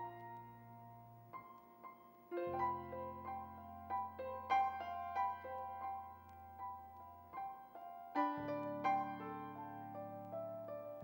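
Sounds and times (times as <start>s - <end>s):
slow soft solo piano: 0.0s - 11.0s.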